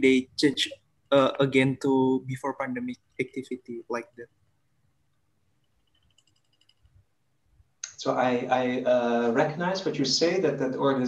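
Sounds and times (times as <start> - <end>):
quick small clicks: 5.6 - 7.0.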